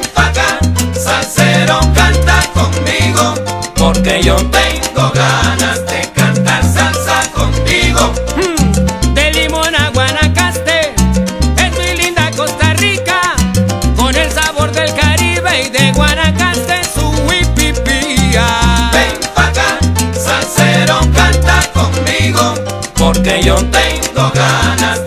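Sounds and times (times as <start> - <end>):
salsa band playing: 0.0 - 25.0
syncopated bass line: 0.0 - 25.0
lead melody with bending notes: 7.0 - 19.3.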